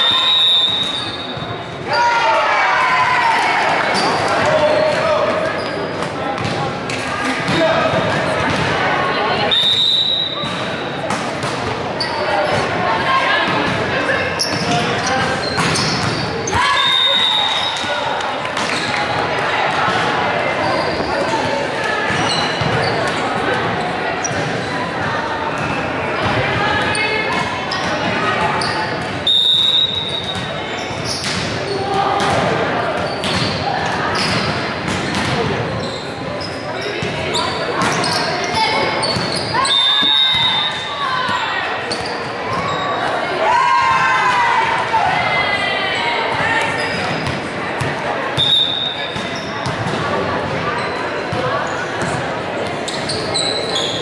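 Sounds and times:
referee's whistle: 0.0s - 1.4s, 9.5s - 10.6s, 15.4s - 17.9s, 29.2s - 30.5s, 39.0s - 41.0s, 48.4s - 49.5s
echoing voices in a hall: 0.0s - 54.0s.

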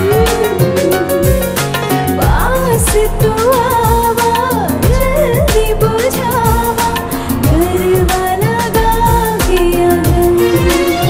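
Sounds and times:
deep drum beat: 0.0s - 11.0s
person singing: 0.0s - 11.0s.

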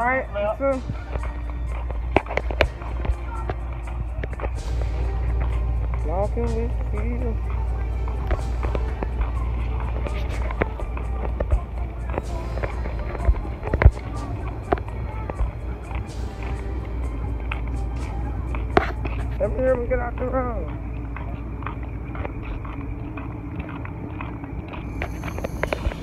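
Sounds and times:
background voices: 0.0s - 26.0s
faint music: 0.0s - 26.0s
low rumble: 0.0s - 26.0s.

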